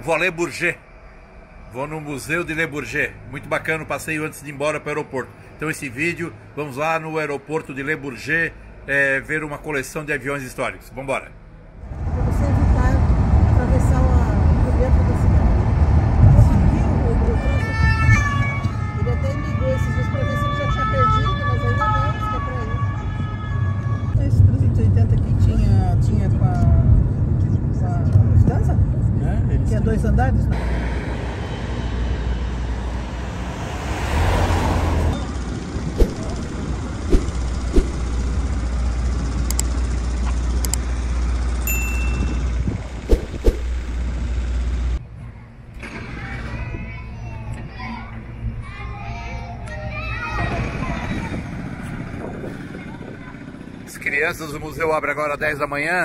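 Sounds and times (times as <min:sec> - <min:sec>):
road traffic rumble: 0:00.0 - 0:55.2
passing vehicle: 0:11.4 - 0:41.6, 0:42.2 - 0:45.0
siren wailing: 0:17.4 - 0:24.1.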